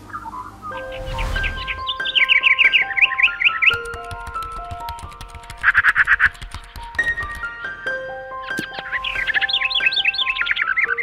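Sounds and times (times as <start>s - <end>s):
bird chirps: 0.0s - 3.8s, 8.4s - 11.0s
whoosh: 0.7s - 2.4s.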